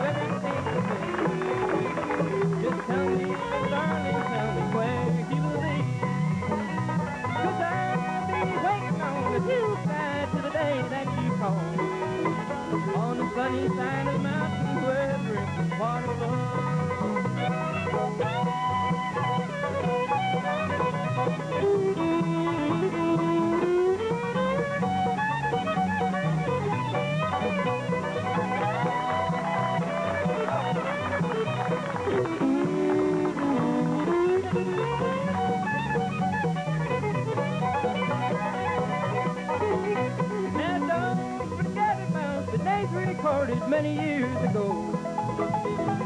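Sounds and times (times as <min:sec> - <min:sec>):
bluegrass string band playing: 0:00.0 - 0:46.0
fiddle sliding melody: 0:00.0 - 0:46.0.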